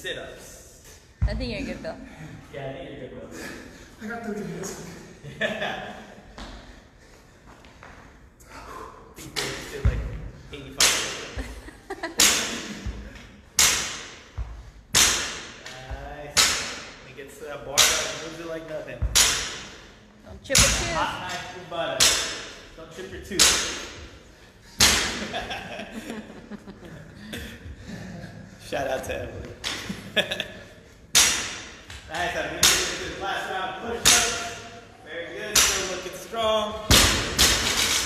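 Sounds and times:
barbell thudding on rubber floor: 0:19.0 - 0:19.8.

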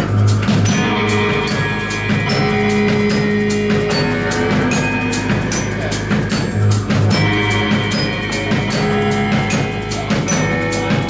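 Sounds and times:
drum kit with cymbals: 0:00.0 - 0:11.0
live band playing: 0:00.0 - 0:11.0.

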